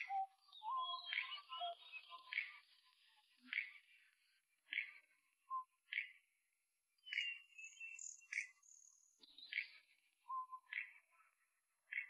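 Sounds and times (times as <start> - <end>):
birds chirping: 0.0 - 2.6, 7.0 - 11.0.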